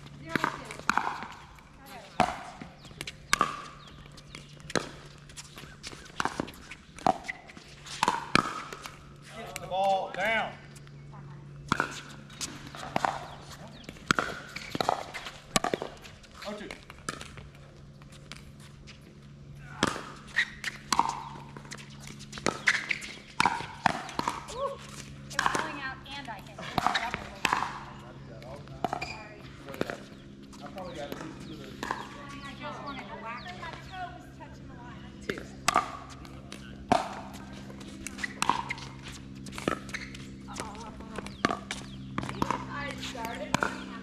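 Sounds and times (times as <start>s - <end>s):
ball bouncing on hard court: 0.0s - 10.2s, 11.6s - 18.5s, 19.8s - 34.0s, 35.3s - 44.0s
steady low hum: 0.0s - 44.0s
paddles hitting plastic ball: 0.3s - 1.5s, 2.1s - 7.3s, 11.7s - 17.6s, 19.8s - 25.8s.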